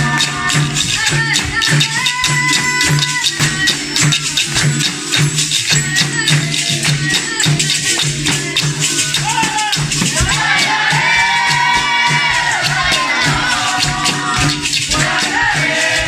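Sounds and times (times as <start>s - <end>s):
berimbaus with shaker rattles: 0.0s - 16.0s
hand drum: 0.0s - 16.0s
handclaps: 0.0s - 16.0s
voices singing: 0.0s - 16.0s.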